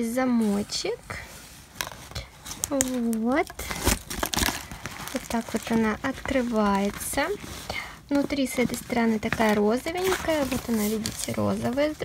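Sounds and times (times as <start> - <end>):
plastic folder rustling: 0.2 - 12.0.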